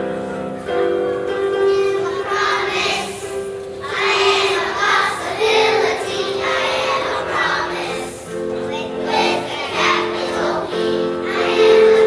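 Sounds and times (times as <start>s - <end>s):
children's choir singing: 0.0s - 12.0s
piano accompaniment: 0.0s - 12.0s.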